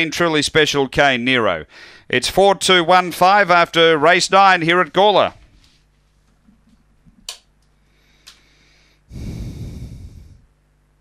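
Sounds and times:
man blowing into microphone: 9.1 - 10.5.

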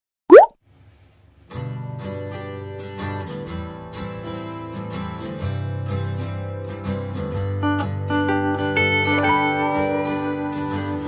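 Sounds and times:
cartoon bloop sound effect: 0.3 - 0.5
acoustic guitar music: 1.4 - 11.0.

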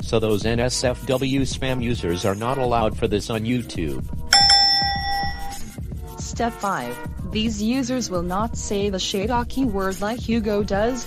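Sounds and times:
background music with steady beat: 0.0 - 11.0
bright chime: 4.4 - 5.7.

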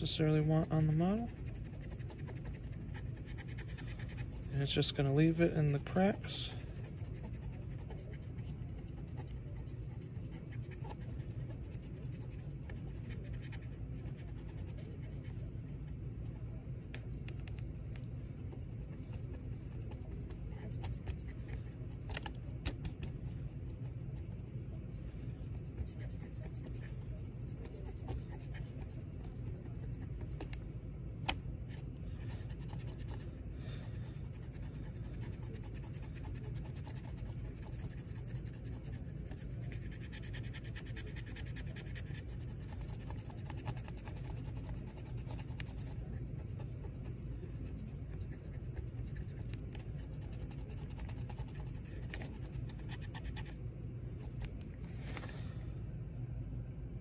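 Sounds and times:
cotton swab rubbing on plastic: 0.0 - 15.3, 34.0 - 53.6
steady low hum: 0.0 - 57.0.

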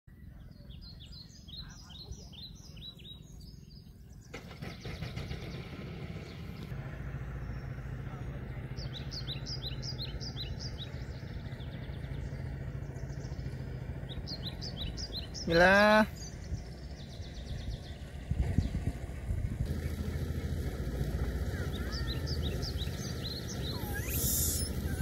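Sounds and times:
bird chirping: 0.1 - 6.7, 7.4 - 18.8, 21.5 - 25.0.

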